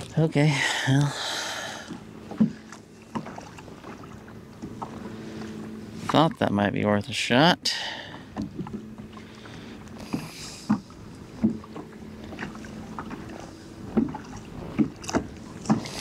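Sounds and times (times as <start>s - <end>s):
faint steady hum: 0.0s - 16.0s
water along hull: 0.0s - 16.0s
knocks and creaks from hull: 1.8s - 6.4s, 8.1s - 16.0s.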